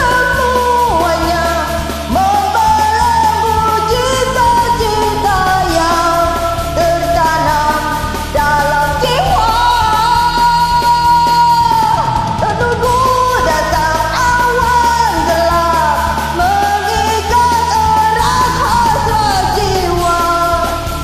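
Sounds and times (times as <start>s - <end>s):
recorded backing track: 0.0s - 21.0s
woman singing karaoke: 0.0s - 21.0s.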